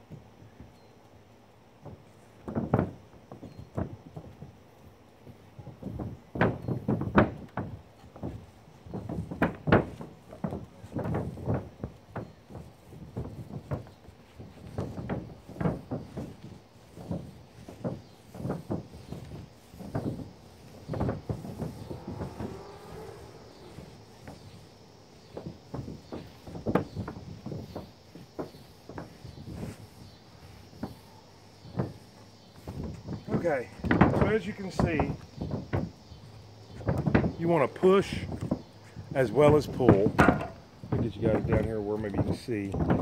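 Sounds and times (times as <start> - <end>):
footsteps on roof: 0.0 - 43.0
paint roller on roof: 0.0 - 43.0
knocks and thumps on roof: 1.8 - 43.0.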